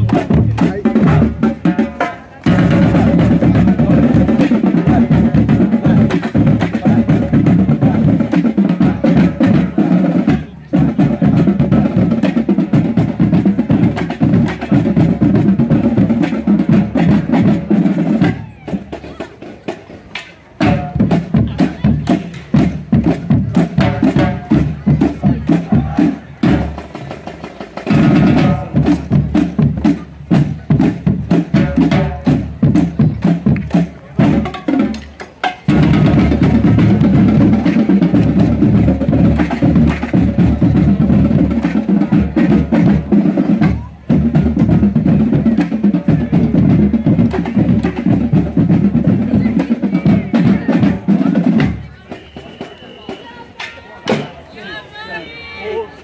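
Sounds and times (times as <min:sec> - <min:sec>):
marching drumline cadence: 0:00.0 - 0:56.0.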